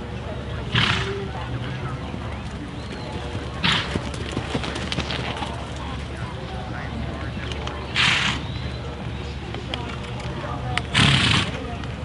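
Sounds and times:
people talking outdoors: 0:00.0 - 0:12.0.

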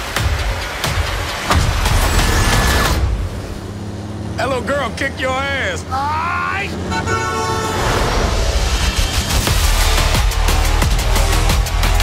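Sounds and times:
truck air horn blaring: 0:06.8 - 0:08.4.

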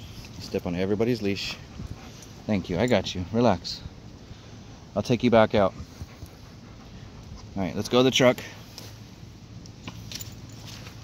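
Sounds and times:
footsteps on dirt and leaves: 0:09.9 - 0:11.0.

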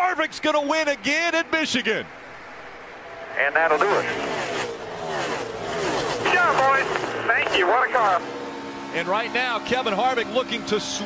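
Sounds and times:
race car engines passing by: 0:00.0 - 0:11.0.

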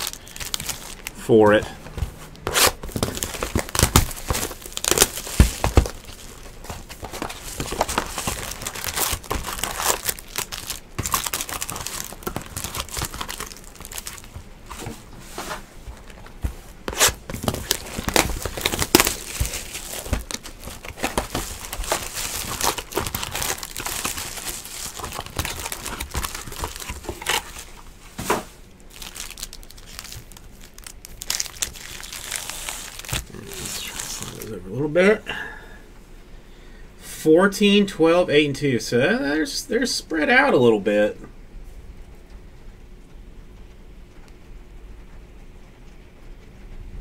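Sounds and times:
foil wrappers crinkling and tearing: 0:00.0 - 0:01.8, 0:02.4 - 0:34.8.

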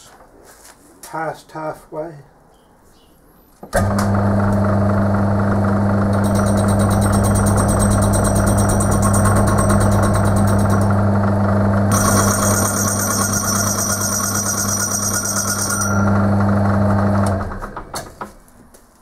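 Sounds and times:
metal lathe humming: 0:03.8 - 0:17.8
high-pitched tool cutting metal: 0:11.9 - 0:16.2.

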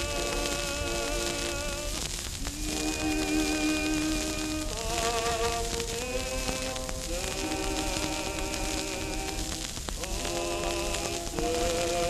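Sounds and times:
record surface hiss and crackle: 0:00.0 - 0:12.0
slow melody from a record: 0:00.0 - 0:12.0.

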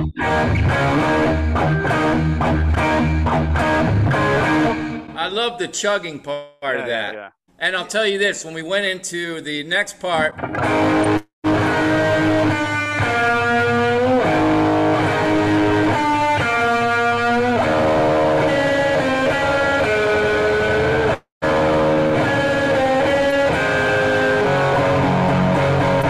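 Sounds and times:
electric guitar notes: 0:00.0 - 0:05.2, 0:10.2 - 0:26.0.

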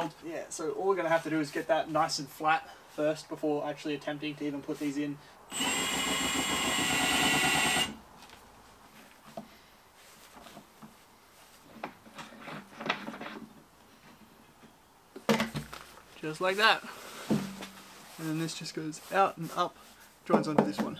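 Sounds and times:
power drill whining: 0:05.5 - 0:08.0.

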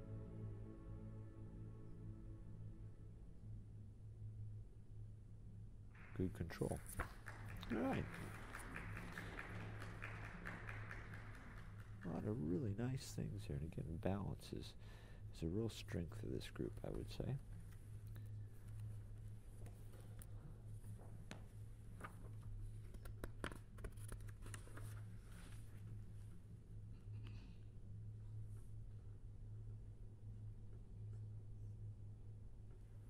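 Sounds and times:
steady hum: 0:00.0 - 0:33.0.

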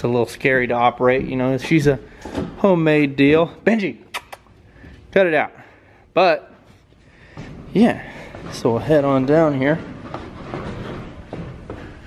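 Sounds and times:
footsteps going down stairs: 0:06.5 - 0:12.0.

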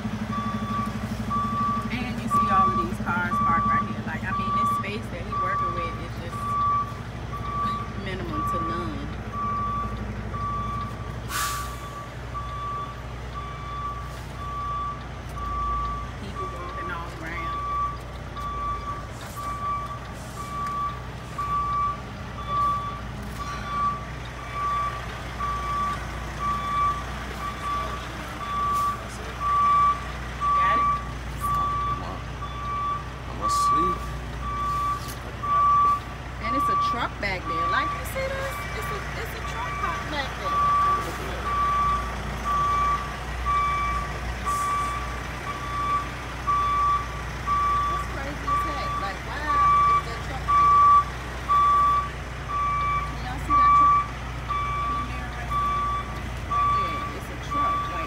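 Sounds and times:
diesel engine running: 0:00.0 - 0:58.0
truck reversing alarm beeping: 0:00.0 - 0:58.0.

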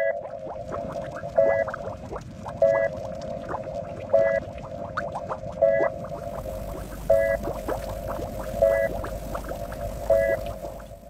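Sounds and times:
steady droning tone: 0:04.0 - 0:11.0
loud repeating pulse: 0:05.6 - 0:11.0.

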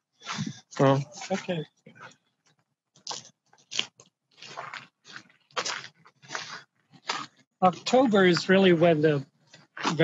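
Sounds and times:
footsteps on gravel: 0:03.1 - 0:07.3.

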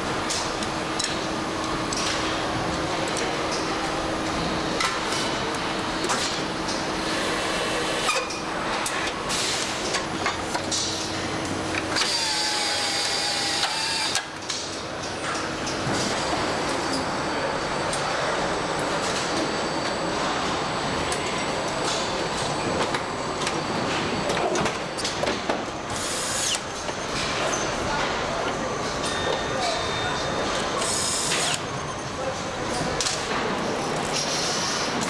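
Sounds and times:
machine whine with hiss: 0:04.1 - 0:10.1, 0:10.8 - 0:14.3, 0:25.8 - 0:27.1, 0:30.8 - 0:31.8, 0:34.1 - 0:35.0.

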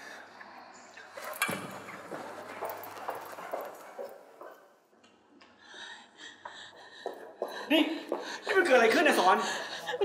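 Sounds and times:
hurried footsteps on hard floor: 0:02.0 - 0:04.7, 0:06.8 - 0:09.4.

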